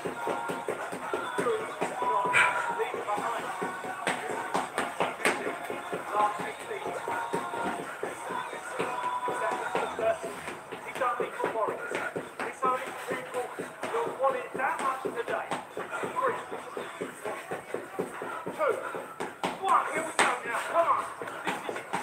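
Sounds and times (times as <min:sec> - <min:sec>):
feet shuffling on hard floor: 0:00.0 - 0:22.0
short knocks and scuffs: 0:00.0 - 0:22.0.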